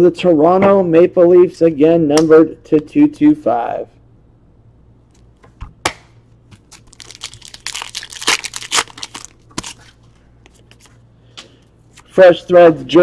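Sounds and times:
wrapper crinkling and tearing: 0:06.5 - 0:11.0.

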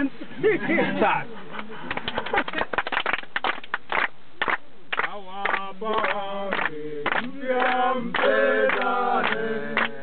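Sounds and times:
people clapping hands: 0:01.6 - 0:10.0
people singing: 0:05.7 - 0:10.0.

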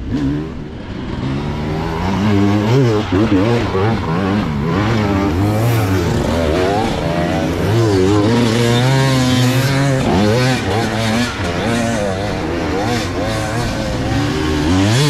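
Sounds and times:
dirt bike engine revving: 0:00.0 - 0:15.0
spectators' voices: 0:01.3 - 0:15.0.

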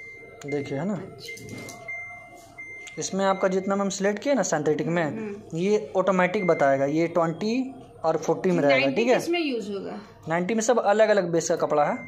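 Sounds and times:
washing machine high beeps: 0:00.0 - 0:09.2, 0:11.6 - 0:12.0.

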